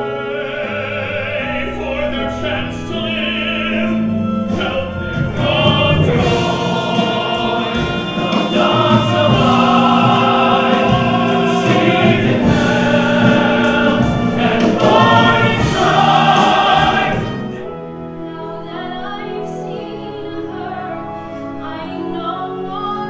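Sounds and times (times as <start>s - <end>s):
male ensemble singing: 0.0s - 17.7s
musical accompaniment: 0.0s - 23.0s.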